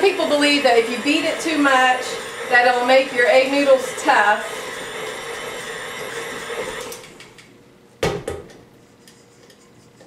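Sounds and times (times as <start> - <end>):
stand mixer motor running: 0.0 - 7.2.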